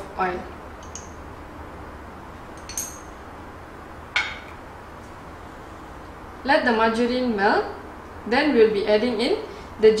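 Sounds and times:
kitchen utensils clinking: 0:02.6 - 0:03.1.

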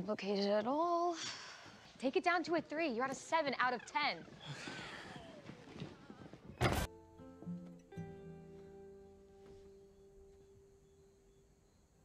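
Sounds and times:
tv dialogue in background: 0:00.1 - 0:06.9.

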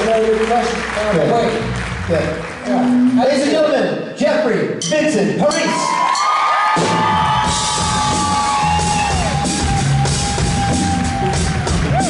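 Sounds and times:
drum kit: 0:06.7 - 0:12.0.

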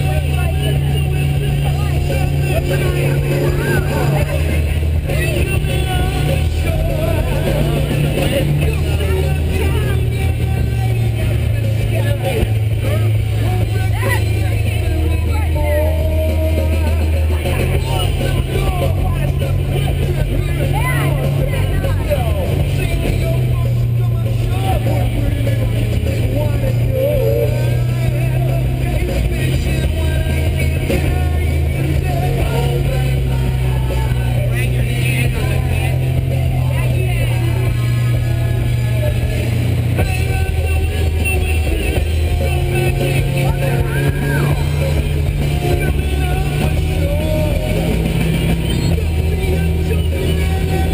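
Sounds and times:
motorboat engine humming: 0:00.0 - 0:50.9
song with bass and singing: 0:00.0 - 0:50.9.

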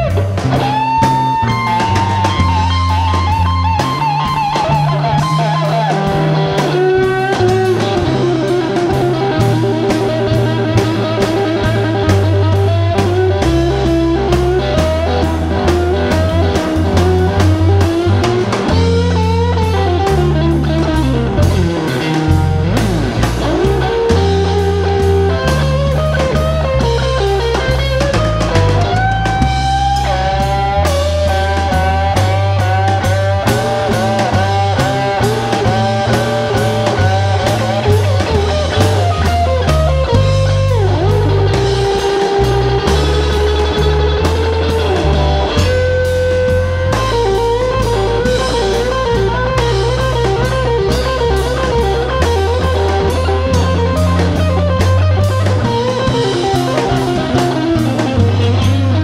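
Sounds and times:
drum kit: 0:00.0 - 0:59.0
electric guitar lead: 0:00.0 - 0:59.0
walking bass line: 0:00.0 - 0:59.0.

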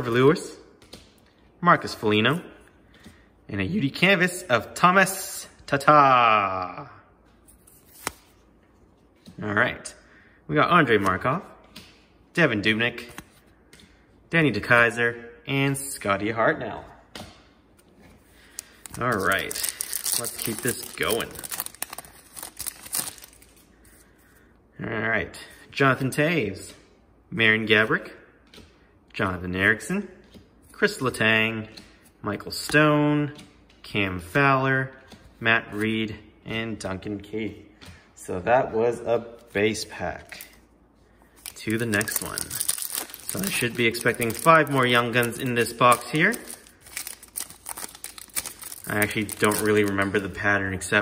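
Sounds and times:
foil wrapper crinkling: 0:18.4 - 0:23.6, 0:41.4 - 0:50.2
man talking: 0:19.0 - 0:21.7, 0:29.1 - 0:40.6, 0:41.5 - 0:46.7, 0:48.7 - 0:51.0.

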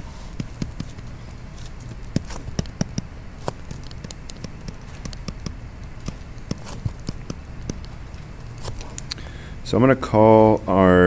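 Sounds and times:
low background hum: 0:00.0 - 0:11.0
stylus tapping on tablet screen: 0:00.4 - 0:01.1, 0:01.8 - 0:09.1.

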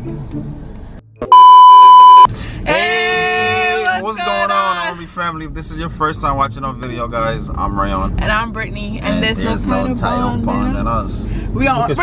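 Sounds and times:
test-tone beep: 0:01.3 - 0:02.3.

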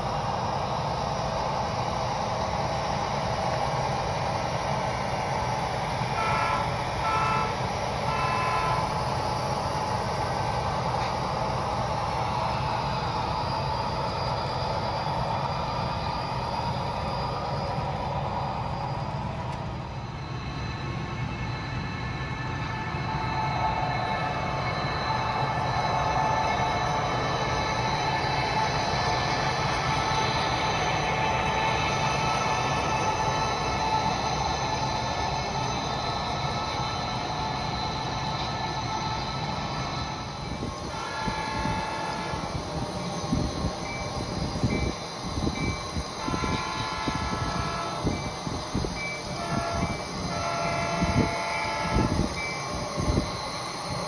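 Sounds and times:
model locomotive engine rumble: 0:00.0 - 0:54.0
locomotive horn blasts: 0:06.2 - 0:09.0, 0:40.8 - 0:42.6, 0:46.2 - 0:48.2, 0:49.3 - 0:52.3.

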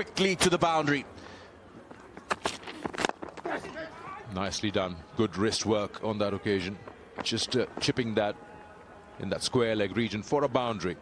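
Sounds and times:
low stadium ambience: 0:00.0 - 0:11.0.

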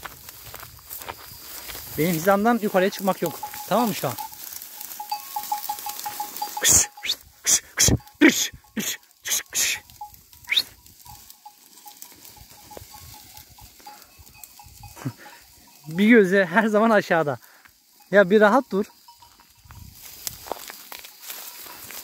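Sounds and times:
dry wheat stalks rustling: 0:00.0 - 0:22.0.

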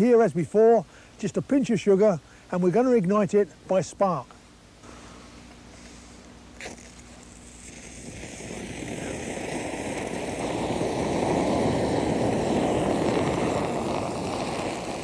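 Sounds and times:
rushing flame: 0:06.6 - 0:15.0.

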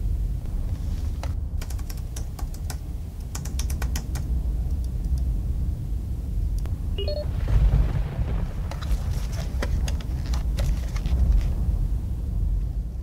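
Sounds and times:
steady low hum: 0:00.0 - 0:13.0
keyboard typing: 0:01.2 - 0:04.3.

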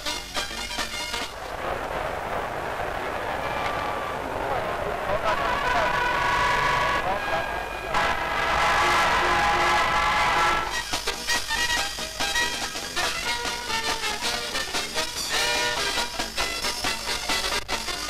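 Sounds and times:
music: 0:00.0 - 0:01.5, 0:05.6 - 0:18.0
crowd din: 0:01.2 - 0:11.2.

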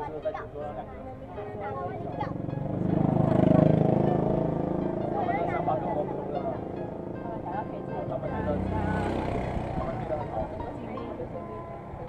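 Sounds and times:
motorbike engine running: 0:02.3 - 0:10.8.

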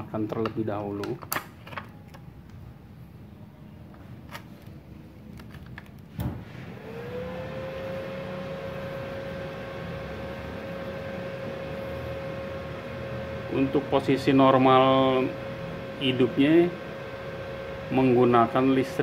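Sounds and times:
welder humming: 0:06.2 - 0:19.0.

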